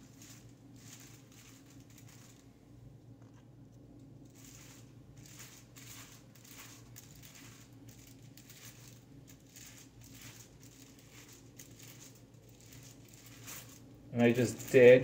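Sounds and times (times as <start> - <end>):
low steady hum: 0.0 - 15.0
brush strokes on hair: 4.4 - 15.0.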